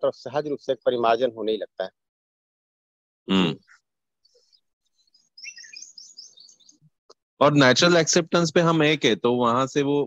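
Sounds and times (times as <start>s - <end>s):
birds chirping: 3.6s - 7.0s.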